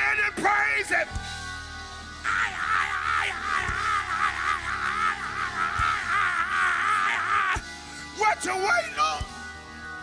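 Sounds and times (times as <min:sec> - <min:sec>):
preacher crying out through microphone: 0:02.2 - 0:09.0.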